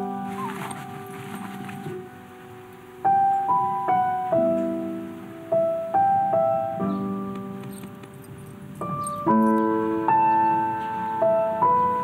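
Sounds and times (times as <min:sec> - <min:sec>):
slow piano chords: 0:00.0 - 0:12.0
faint light clinks: 0:07.4 - 0:09.8.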